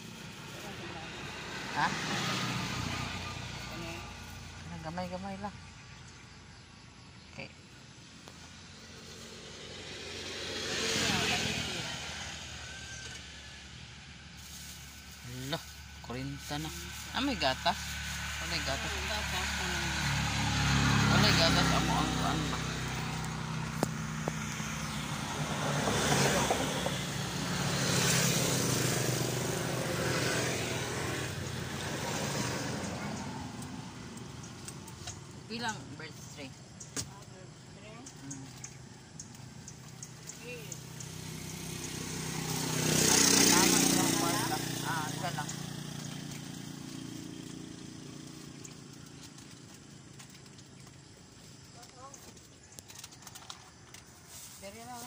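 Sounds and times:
passing vehicles: 0.0 - 55.0
vehicle engine running: 0.0 - 55.0.

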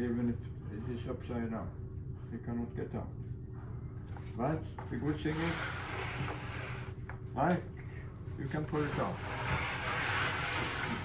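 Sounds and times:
wood scraping on wood: 5.1 - 7.0, 8.5 - 11.0.

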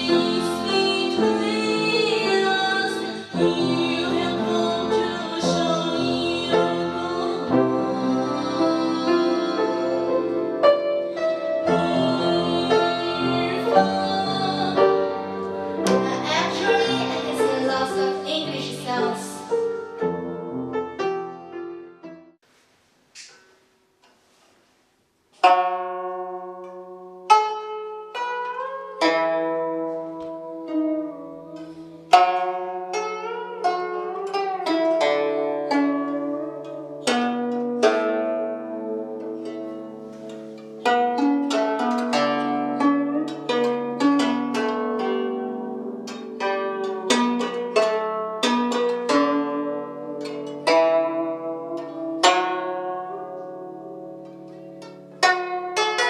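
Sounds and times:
plucked zither strings ringing: 25.4 - 56.0.

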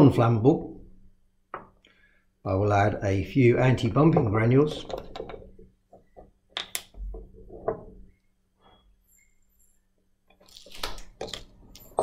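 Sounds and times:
glass bottles clicking: 11.2 - 12.0.

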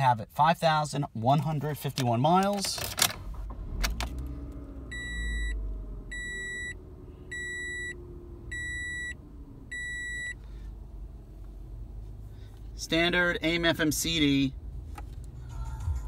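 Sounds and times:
car engine running: 3.2 - 16.0
dashboard warning chime beeping: 4.9 - 10.4.

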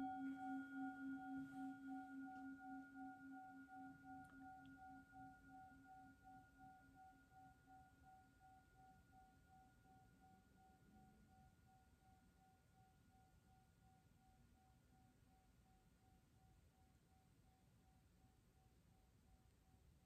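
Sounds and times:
metal singing bowl ringing: 0.0 - 7.3.

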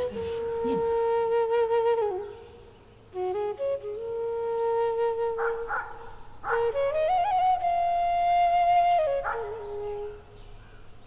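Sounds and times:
flute music with held notes: 0.0 - 10.6.

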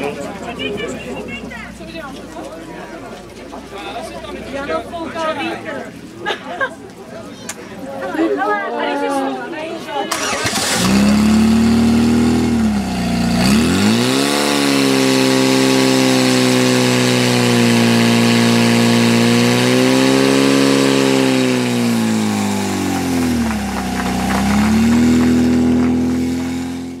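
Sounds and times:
pump engine starting and revving: 10.1 - 27.0.

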